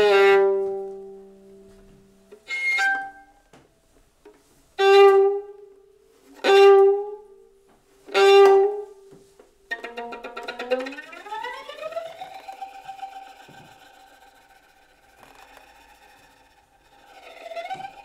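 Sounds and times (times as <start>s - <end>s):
violin playing bowed notes: 0.0s - 3.6s, 4.8s - 18.0s.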